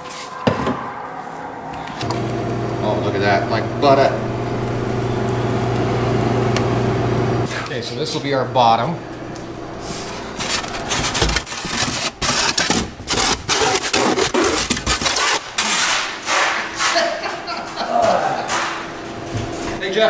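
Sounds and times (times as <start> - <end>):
styrofoam scraping against cardboard: 10.4 - 17.2.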